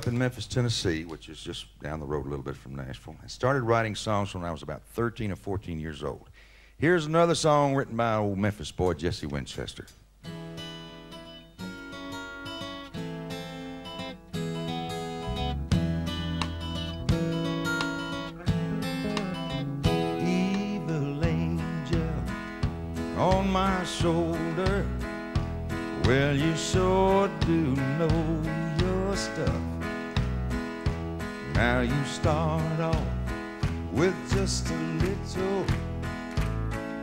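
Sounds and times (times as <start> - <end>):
strummed acoustic guitar: 10.2 - 37.0
sliding lead melody: 10.4 - 37.0
country band playing: 10.6 - 37.0
bass guitar: 12.2 - 37.0.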